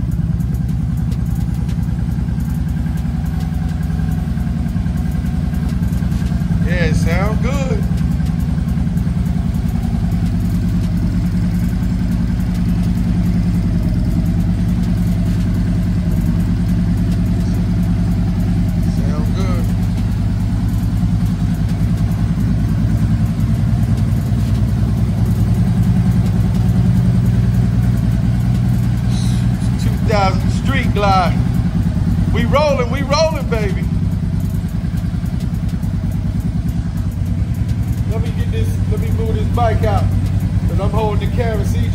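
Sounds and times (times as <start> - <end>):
motorcycle engine idling: 0.0 - 41.9.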